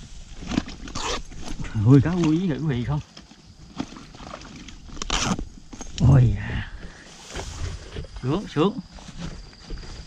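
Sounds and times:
rustling in grass: 3.3 - 10.0.

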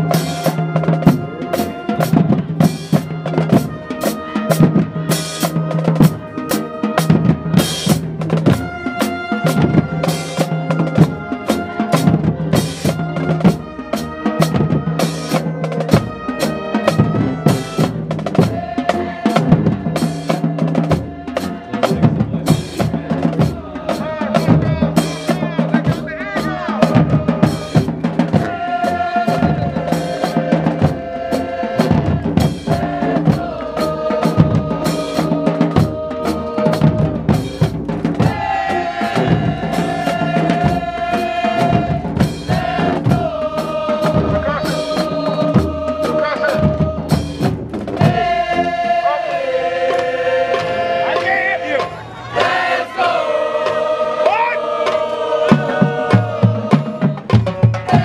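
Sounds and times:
bass and snare drums: 0.0 - 58.0
brass horns and sousaphone: 0.0 - 58.0.

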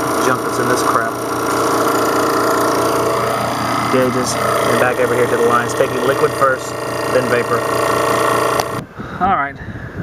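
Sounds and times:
compressor machine running: 0.0 - 9.0.

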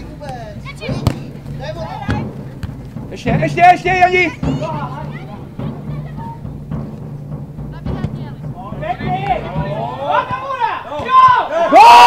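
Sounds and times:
dull low thuds and knocks: 0.0 - 11.4
distant players calling: 0.0 - 12.0.

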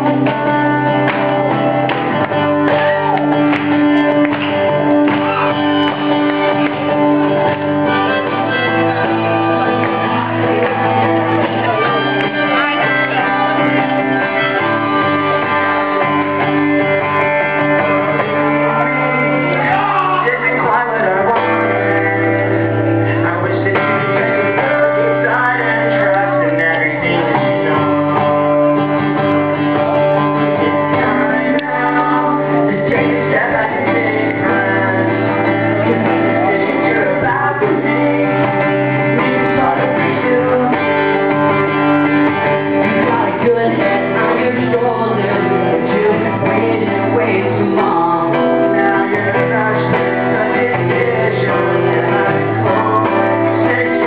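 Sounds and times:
live guitar music: 0.0 - 54.0
person singing: 0.0 - 54.0.

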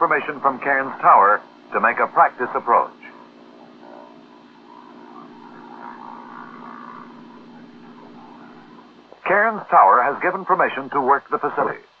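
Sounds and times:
light airplane engine humming: 0.0 - 12.0.

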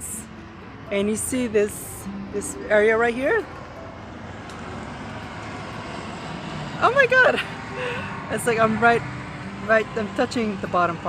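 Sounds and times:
distant road traffic rumble: 0.0 - 11.0.

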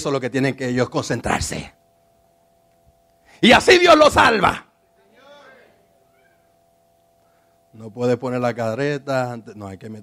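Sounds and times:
man speaking: 0.0 - 1.8, 3.4 - 5.9
faint steady hum: 0.0 - 10.0
high-pitched call: 4.9 - 7.6.

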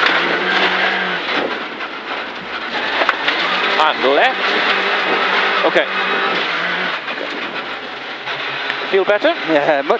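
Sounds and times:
car engine from inside cabin: 0.0 - 9.9
tyres on gravel road: 0.0 - 9.9.

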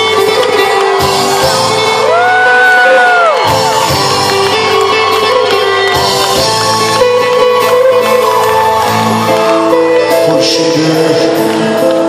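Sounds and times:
live band with string orchestra: 0.0 - 12.0.

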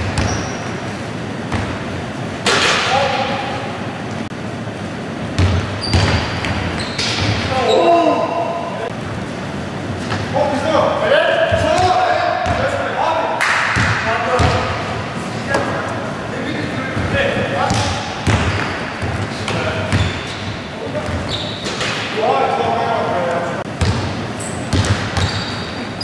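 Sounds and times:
sneakers squeaking: 0.0 - 10.4, 11.4 - 12.8, 13.6 - 22.2, 23.7 - 26.0
basketball bouncing on hardwood: 24.7 - 25.4.

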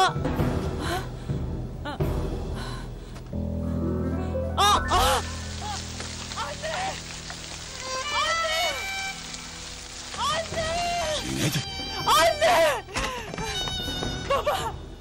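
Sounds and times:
low dramatic background music: 0.0 - 15.0
woman sobbing and wailing: 10.8 - 15.0.

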